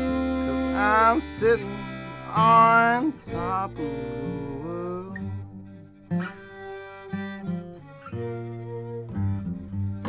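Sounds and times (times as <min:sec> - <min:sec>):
bluegrass string band playing: 0:00.0 - 0:10.0.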